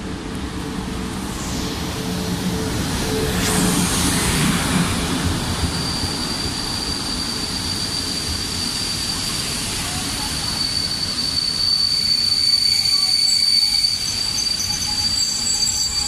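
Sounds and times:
electric locomotive passing: 0.0s - 16.0s
train brakes squealing: 2.0s - 16.0s.

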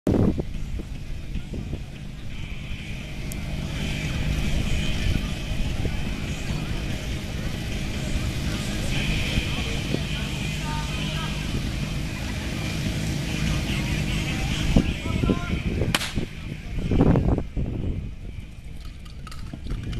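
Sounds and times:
pump engine humming: 0.4s - 16.8s, 18.1s - 19.9s
people's voices: 0.7s - 18.4s.

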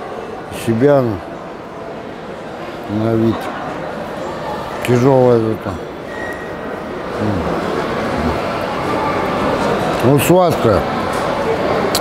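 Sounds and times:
restaurant din: 0.0s - 12.0s
man eating: 7.1s - 8.7s
man humming: 7.2s - 8.4s.

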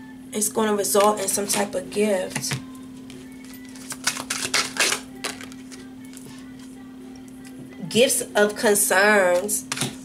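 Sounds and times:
cards being shuffled: 3.0s - 6.7s, 9.4s - 10.0s.

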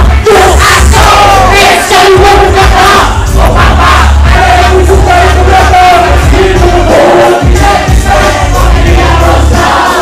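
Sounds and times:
crowd shouting and chanting: 0.0s - 10.0s
hip-hop beat with deep bass: 0.0s - 10.0s.

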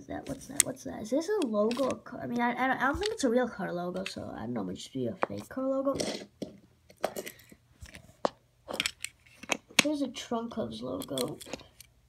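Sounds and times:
metal toy cars clicking: 1.4s - 2.0s, 10.9s - 11.9s.

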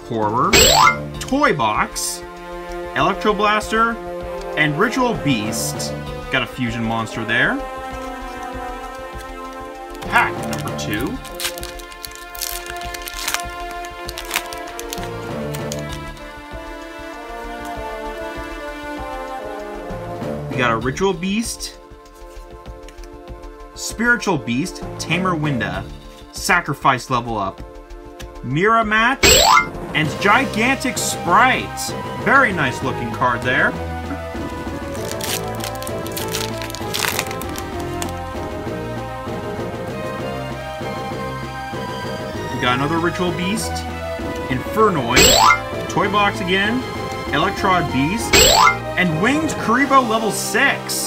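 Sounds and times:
background music with sustained tones: 0.0s - 51.0s
foil pack being ripped open: 10.0s - 16.0s, 34.9s - 38.2s.

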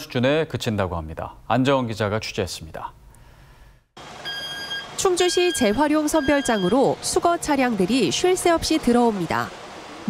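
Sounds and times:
truck engine noise: 4.0s - 10.0s
high electronic warning beep: 4.2s - 7.0s.

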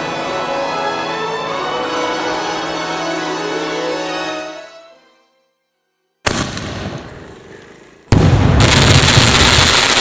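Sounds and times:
firework launch bang: 6.2s - 10.0s
firework crackling: 6.3s - 10.0s.

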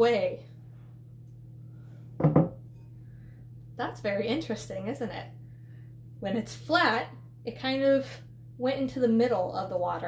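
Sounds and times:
steady low hum: 0.0s - 10.0s
glass bowl clunk on wooden table: 2.2s - 2.6s.

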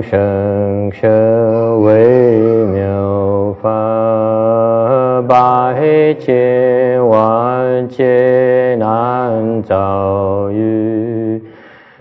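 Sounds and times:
slow liturgical chanting: 0.0s - 12.0s.

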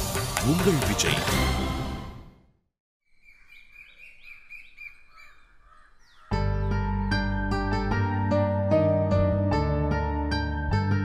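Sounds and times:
birds chirping: 3.0s - 7.3s.

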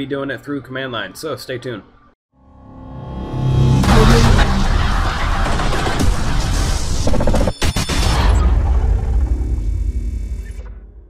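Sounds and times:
deep rumbling boom: 2.7s - 7.2s.

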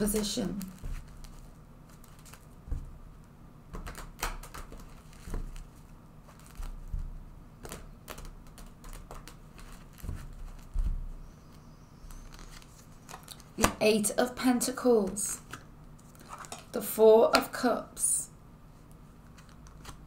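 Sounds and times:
cards being shuffled: 0.0s - 13.8s, 18.9s - 20.0s.

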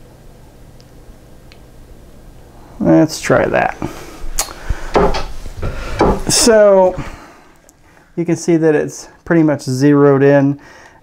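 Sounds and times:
clicks and knocks: 4.4s - 6.5s.

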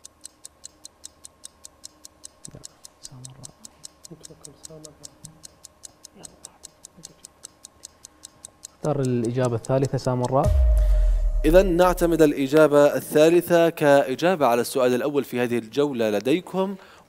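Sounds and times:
countdown timer ticking: 3.9s - 12.6s.

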